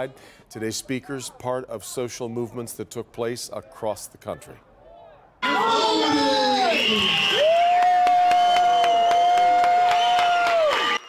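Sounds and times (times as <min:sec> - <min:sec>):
crowd cheering and clapping: 0:05.4 - 0:11.0.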